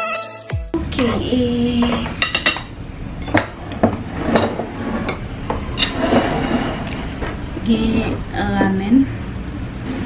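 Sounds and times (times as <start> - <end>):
woman's voice: 0.7 - 2.3, 7.6 - 9.2
ceramic plate sliding and set down: 3.2 - 7.3.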